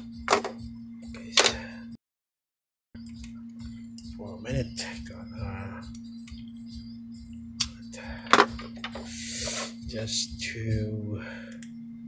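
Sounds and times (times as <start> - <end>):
electrical hum: 0.0 - 2.0, 3.0 - 12.0.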